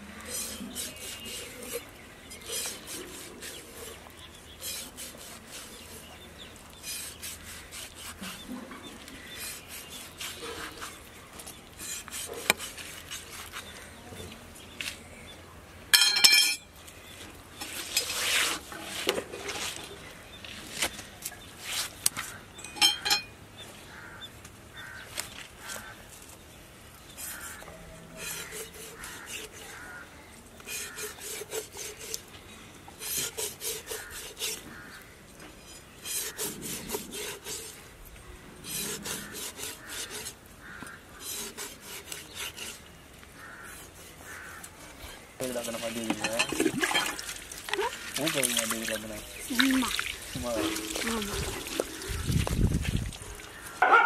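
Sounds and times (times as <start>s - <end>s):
knife scraping fish skin: 0.3s - 1.8s, 2.4s - 4.0s, 4.6s - 6.1s, 6.8s - 8.5s, 9.2s - 11.0s, 11.8s - 13.7s, 28.2s - 29.9s, 30.6s - 32.3s, 33.0s - 34.9s, 35.6s - 37.8s, 38.6s - 42.9s.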